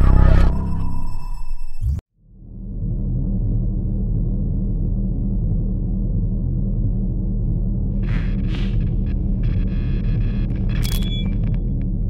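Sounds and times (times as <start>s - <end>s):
deep rumble: 0.0s - 12.0s.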